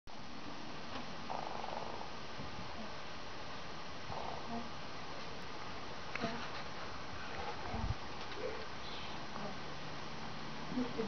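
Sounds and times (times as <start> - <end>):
steady background hiss: 0.1 - 11.0.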